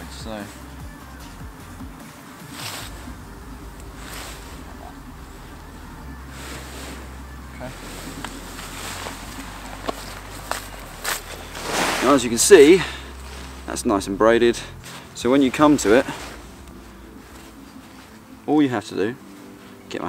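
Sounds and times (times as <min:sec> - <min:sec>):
nylon wing rustling: 0:01.9 - 0:20.0
steady low rumble: 0:02.8 - 0:18.5.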